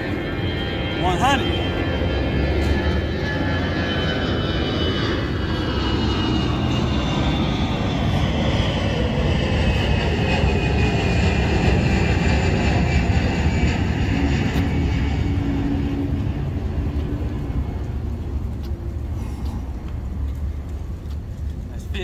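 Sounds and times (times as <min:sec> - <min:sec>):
airplane flying past: 0:00.0 - 0:22.0.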